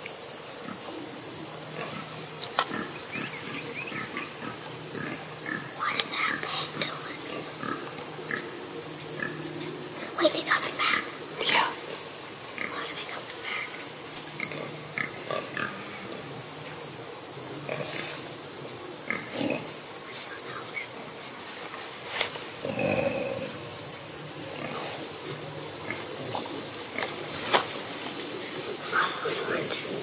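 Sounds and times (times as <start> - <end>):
steady high hiss: 0.0 - 30.0
hogs grunting: 0.6 - 12.8, 13.5 - 19.8, 22.6 - 27.4.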